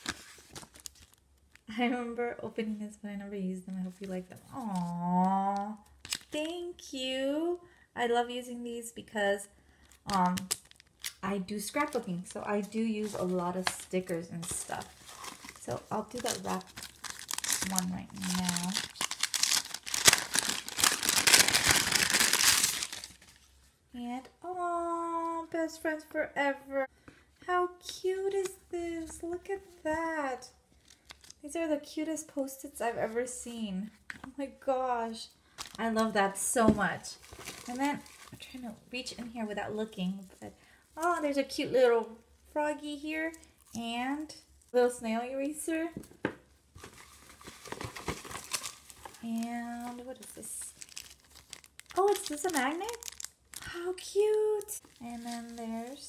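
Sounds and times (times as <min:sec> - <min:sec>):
wrapping paper crinkling: 0:00.0 - 0:01.7, 0:09.8 - 0:23.5, 0:30.8 - 0:31.4, 0:35.6 - 0:35.8, 0:37.2 - 0:38.5, 0:46.8 - 0:56.0.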